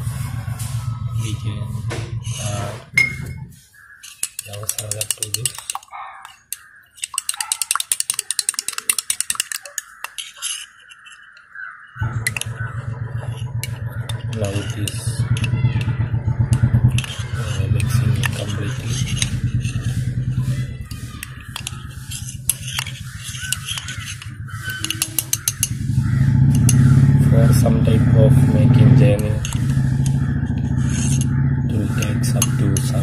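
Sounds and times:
engine hum: 0.0s - 5.5s, 12.0s - 33.0s
knife clicking against glass: 4.1s - 11.0s.

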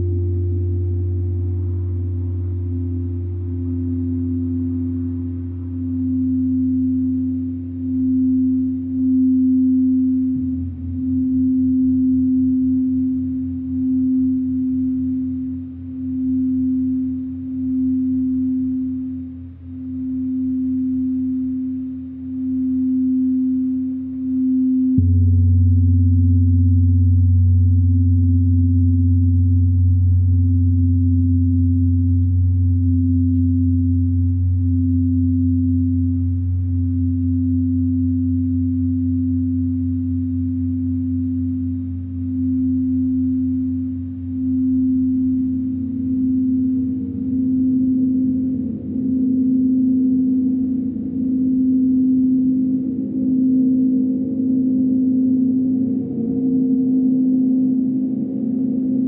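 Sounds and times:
deep hum: 0.0s - 59.0s
singing bowl tone: 0.0s - 59.0s.

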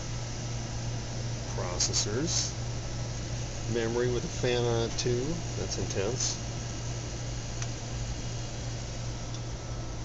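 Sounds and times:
computer cooling fans whirring: 0.0s - 10.0s.

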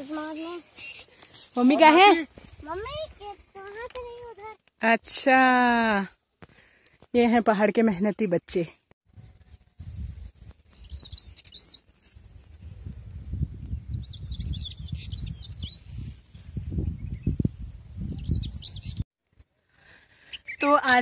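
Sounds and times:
small birds twittering: 10.6s - 12.7s, 13.7s - 15.9s, 16.9s - 19.5s.

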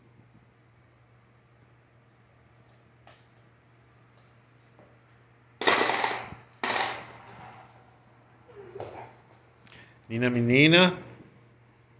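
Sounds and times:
marbles rolling on hard floor: 5.6s - 7.8s.

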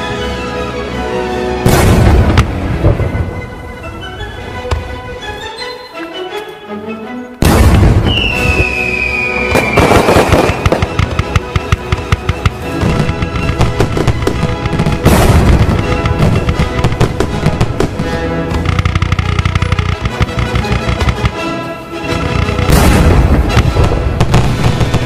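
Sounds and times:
background music: 0.0s - 25.0s
loud firework burst: 7.4s - 11.1s, 22.5s - 25.0s
fireworks crackling and popping: 7.4s - 25.0s.

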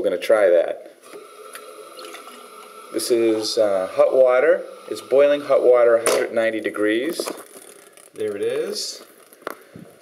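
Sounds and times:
water running into mug: 1.3s - 5.8s.

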